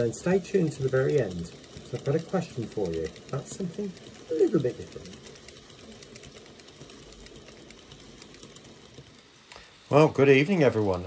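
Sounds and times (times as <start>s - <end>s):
model train rattling on track: 0.0s - 11.0s.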